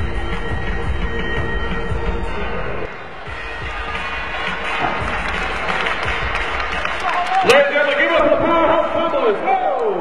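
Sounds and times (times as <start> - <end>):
music playing: 0.0 - 9.4
audience applauding: 3.8 - 8.7.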